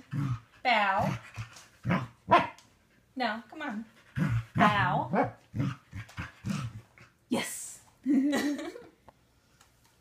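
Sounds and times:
dog barking: 1.9 - 2.6, 4.6 - 5.4.

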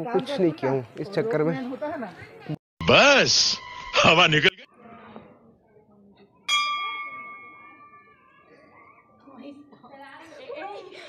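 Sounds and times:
faint voices: 4.7 - 11.0
temple bell ringing: 6.5 - 8.4.

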